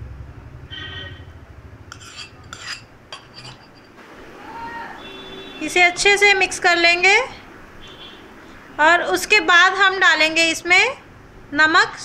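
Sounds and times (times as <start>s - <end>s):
spoon scraping metal pan: 1.9s - 4.0s.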